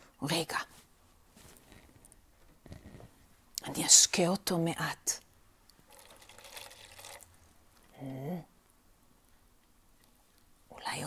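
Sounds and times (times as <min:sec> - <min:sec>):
water trickling into soil: 0:05.8 - 0:07.4.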